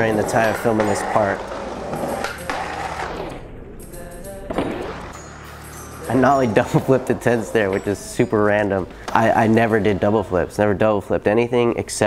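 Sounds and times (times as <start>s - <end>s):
skateboard clacks on concrete: 0.0s - 3.2s
background music: 0.0s - 12.0s.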